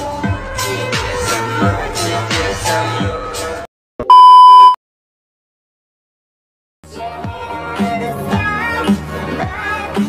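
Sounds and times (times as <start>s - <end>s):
background music: 0.0s - 3.6s, 6.9s - 10.0s
high electronic beep: 4.0s - 4.8s.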